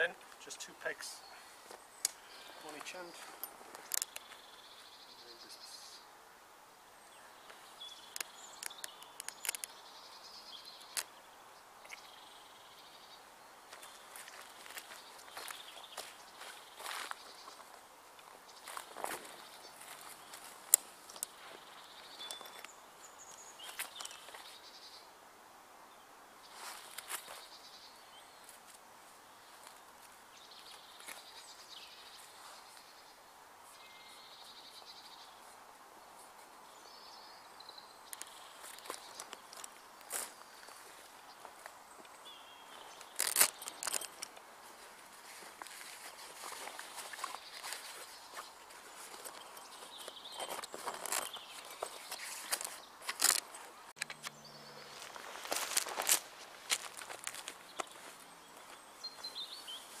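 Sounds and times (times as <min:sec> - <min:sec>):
faint outdoor background: 0:00.0 - 1:00.0.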